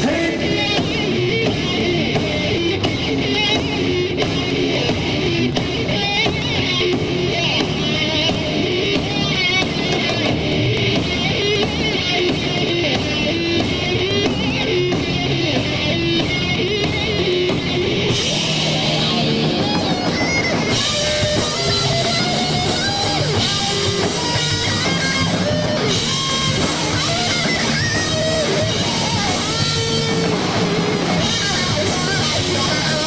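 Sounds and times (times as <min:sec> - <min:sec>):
bass guitar: 0:00.0 - 0:33.0
drum kit: 0:00.0 - 0:33.0
electric guitars: 0:00.0 - 0:33.0.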